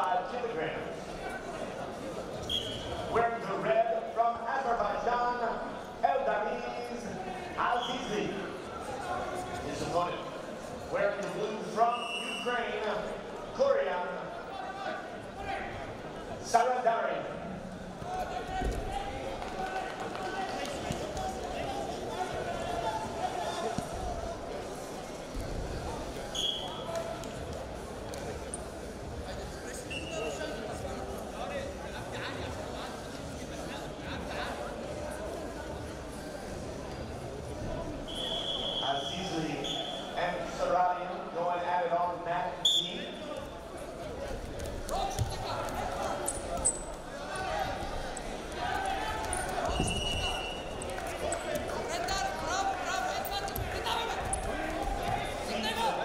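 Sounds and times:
indistinct voices in arena: 0:00.0 - 0:56.0
referee's whistle blasts: 0:02.4 - 0:03.0, 0:11.9 - 0:12.5, 0:26.3 - 0:26.8, 0:38.1 - 0:40.2, 0:42.6 - 0:43.0, 0:49.7 - 0:50.7.

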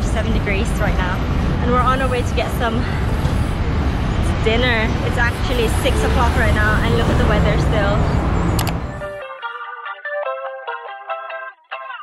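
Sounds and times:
city traffic rumble: 0:00.0 - 0:09.2
sharp click: 0:08.6 - 0:08.8.

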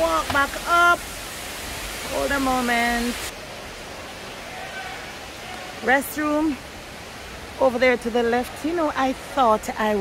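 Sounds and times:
distant falling water: 0:00.0 - 0:10.0.

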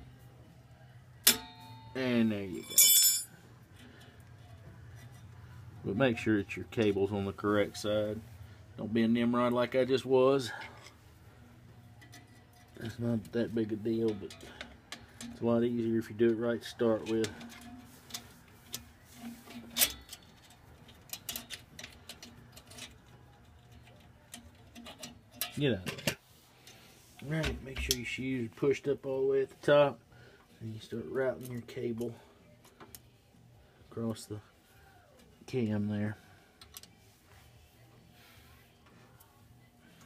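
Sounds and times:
metallic spring clink: 0:01.2 - 0:03.4
metallic clicks of brake parts: 0:19.7 - 0:26.2.

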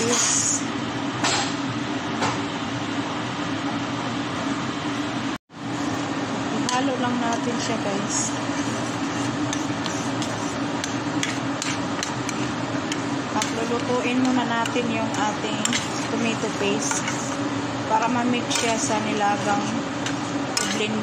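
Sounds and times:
steady low hum: 0:00.0 - 0:21.0
spoon scraping and clinking pot: 0:08.4 - 0:17.4, 0:18.4 - 0:21.0.

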